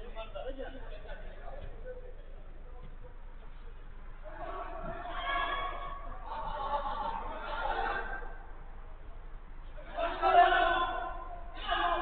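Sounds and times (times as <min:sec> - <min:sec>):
man shouting: 0:09.8 - 0:12.0.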